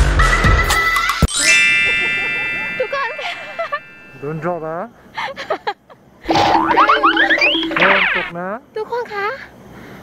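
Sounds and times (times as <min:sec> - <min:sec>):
cartoon-style sliding tones: 0:06.3 - 0:08.3.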